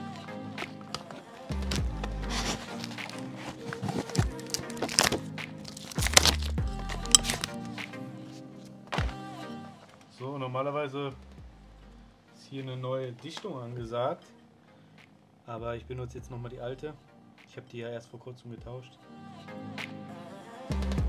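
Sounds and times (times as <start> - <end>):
background music: 0.0 - 21.0
man talking: 12.4 - 14.3, 15.5 - 18.9.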